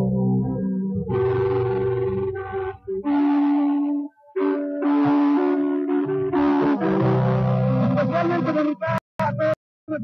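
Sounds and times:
guitar melody of held notes: 0.0s - 8.9s.

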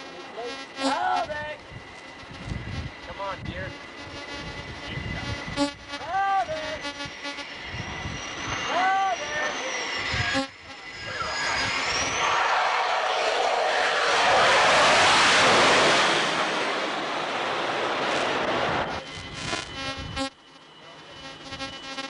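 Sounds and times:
jet engine roar: 0.0s - 22.0s
thin high whine: 0.0s - 22.0s.

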